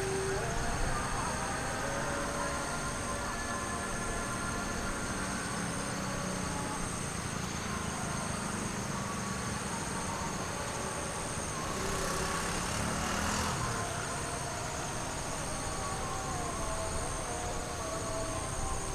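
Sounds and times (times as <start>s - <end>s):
insects calling: 0.0s - 18.9s.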